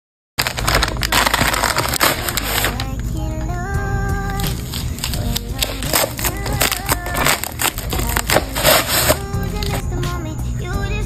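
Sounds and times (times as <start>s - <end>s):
plastic mailer crinkling and ripping: 0.4s - 2.9s, 4.4s - 9.8s
background music: 0.4s - 11.0s.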